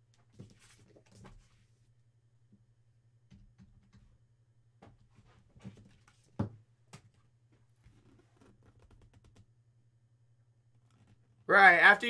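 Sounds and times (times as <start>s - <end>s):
low steady hum: 9.4s - 11.5s.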